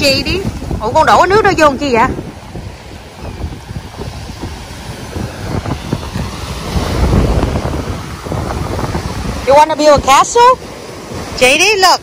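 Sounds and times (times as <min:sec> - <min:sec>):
surf washing: 0:00.0 - 0:12.0
wind buffeting microphone: 0:00.0 - 0:12.0.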